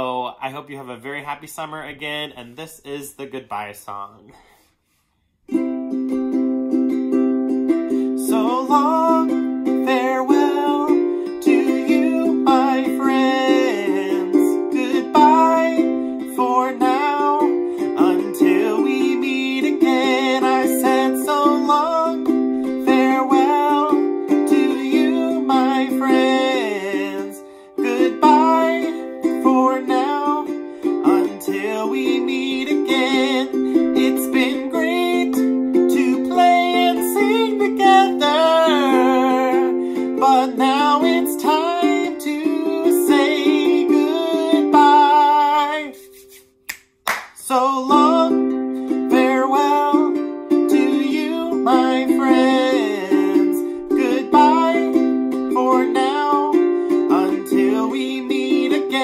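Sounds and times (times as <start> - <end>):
man singing: 0.0 - 4.4, 7.9 - 46.2, 47.4 - 59.0
ukulele strummed chords: 5.5 - 46.4, 47.5 - 59.0.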